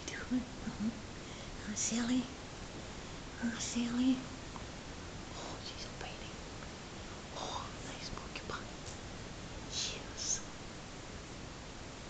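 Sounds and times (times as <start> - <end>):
person whispering: 0.0 - 0.5, 1.6 - 2.3, 3.4 - 4.3, 5.4 - 6.4, 7.4 - 8.8, 9.7 - 10.5
faint room noise: 0.0 - 12.0.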